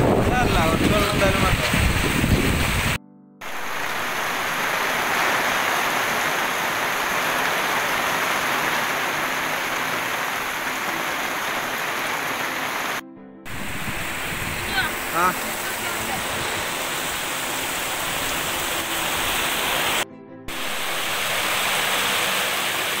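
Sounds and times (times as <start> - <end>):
heavy rain falling: 0.0 - 23.0.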